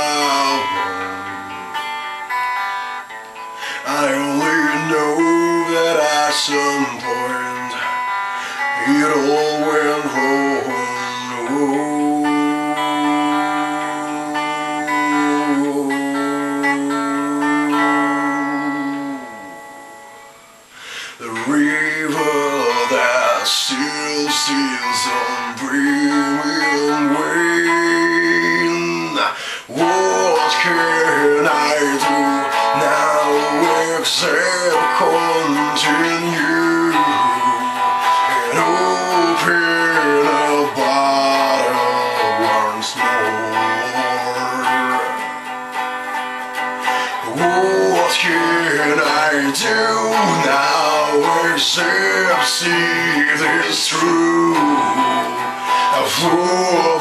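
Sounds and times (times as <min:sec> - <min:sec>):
rock ballad guitar instrumental: 0:00.0 - 0:57.0.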